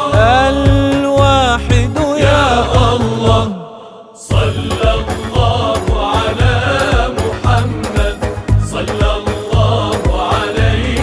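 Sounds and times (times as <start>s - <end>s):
music with percussion beat: 0.0s - 3.5s, 4.3s - 11.0s
person chanting: 0.0s - 11.0s.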